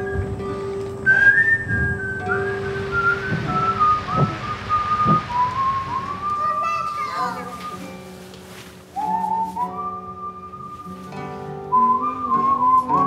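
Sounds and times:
person whistling a tune: 0:00.0 - 0:08.3, 0:08.9 - 0:13.0.

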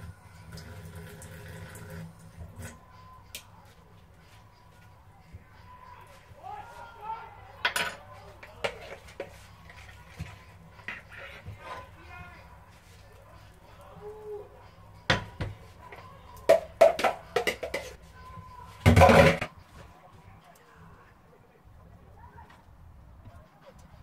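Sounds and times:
metal spoon knocking and clinking: 0:07.6 - 0:09.0.

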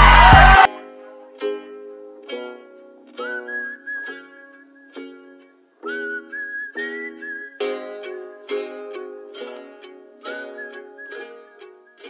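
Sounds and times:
plucked-string chords: 0:00.0 - 0:06.1, 0:06.8 - 0:12.0
whistled melody: 0:03.0 - 0:12.0.

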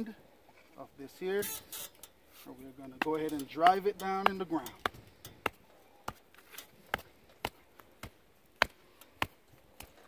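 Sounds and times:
sledgehammer striking wooden stake: 0:03.0 - 0:10.0.

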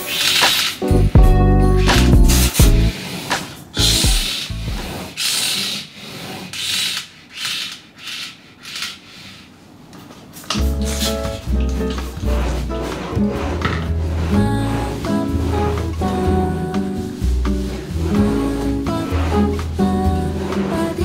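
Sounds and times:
drawer runners scratchy hisses: 0:00.0 - 0:01.0, 0:01.8 - 0:21.0
background music: 0:00.0 - 0:03.1, 0:10.6 - 0:21.0.

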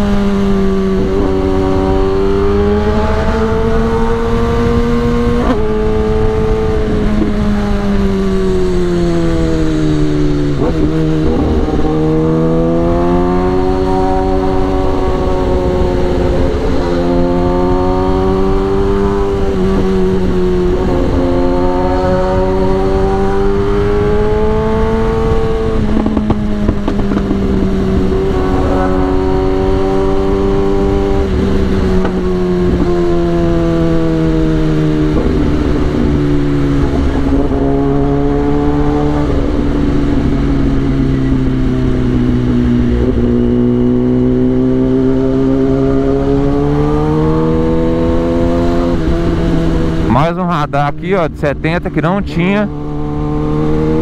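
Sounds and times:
motorcycle engine running: 0:00.0 - 0:50.4.

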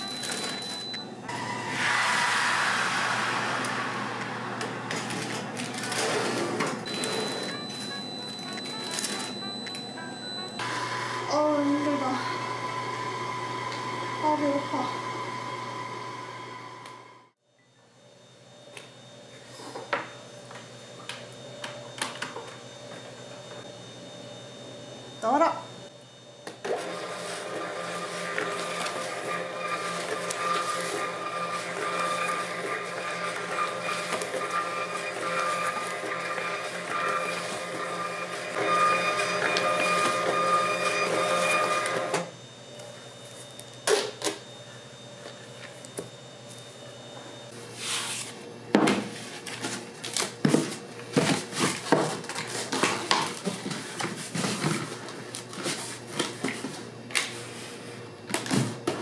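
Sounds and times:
label printer motor running: 0:04.9 - 0:11.2, 0:26.8 - 0:42.4.

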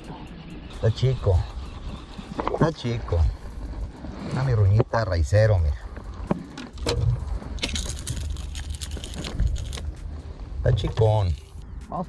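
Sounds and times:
low handling rumble: 0:00.8 - 0:11.9
rustling: 0:05.8 - 0:10.1
lure and hooks clicking and rattling: 0:06.0 - 0:10.0, 0:10.8 - 0:11.6.

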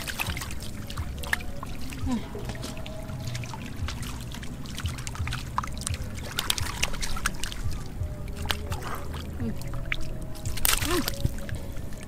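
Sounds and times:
small water splashes: 0:00.0 - 0:12.0
trickling water: 0:00.0 - 0:12.0.

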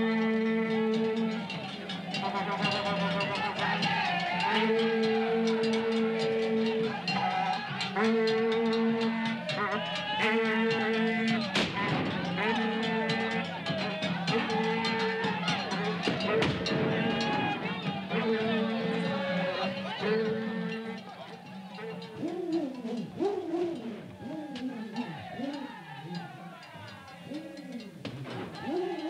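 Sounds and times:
rapid drum beats: 0:00.0 - 0:22.3, 0:23.0 - 0:29.0
voices chanting long notes: 0:00.0 - 0:29.0.

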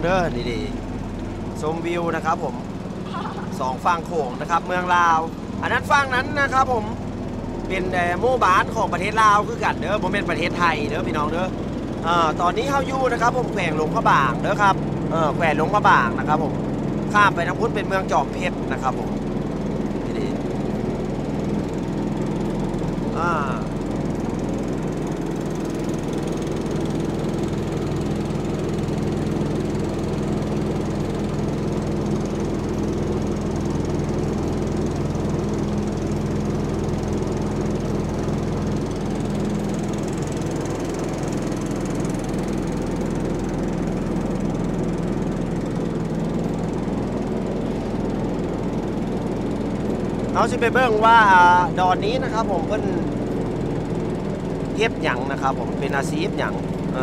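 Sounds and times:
boat engine humming: 0:00.0 - 0:57.0.

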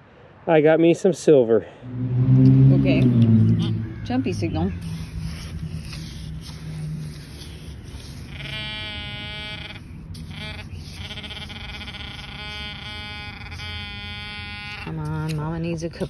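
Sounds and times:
metal detector buzzy tone: 0:02.9 - 0:15.0.

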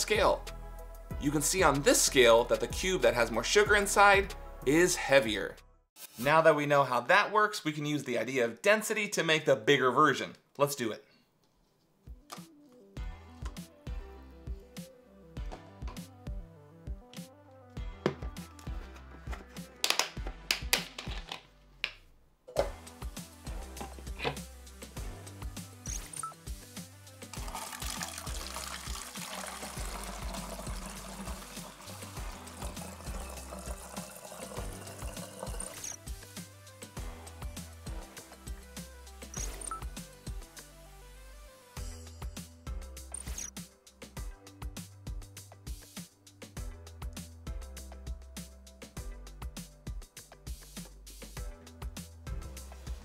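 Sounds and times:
music with steady bass beat: 0:13.0 - 0:21.2, 0:22.6 - 0:27.6, 0:29.8 - 0:33.6, 0:36.0 - 0:53.0
water poured into plastic bottle: 0:27.3 - 0:35.8.

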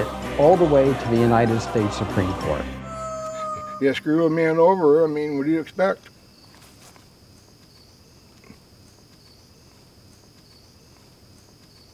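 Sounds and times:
insects trilling: 0:02.8 - 0:11.9.

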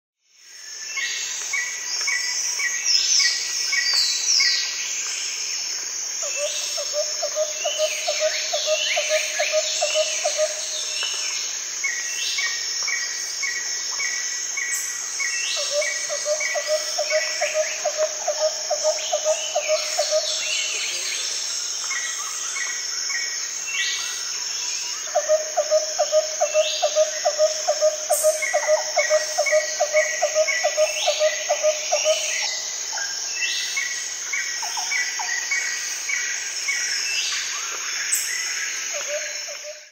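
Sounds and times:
high insect drone: 0:00.4 - 0:39.9.

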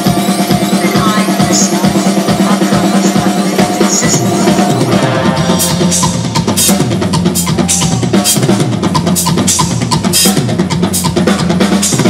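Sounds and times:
bass drum: 0:00.0 - 0:12.0.

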